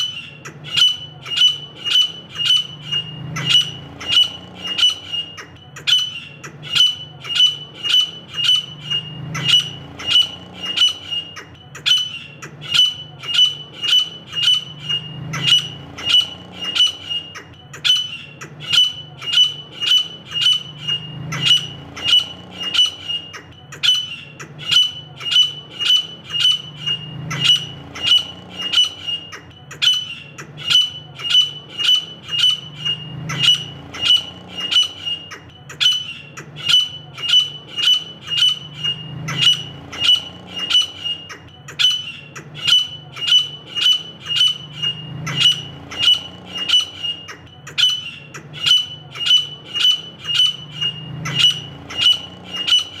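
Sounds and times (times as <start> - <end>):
francolin calling: 0.0 - 53.0.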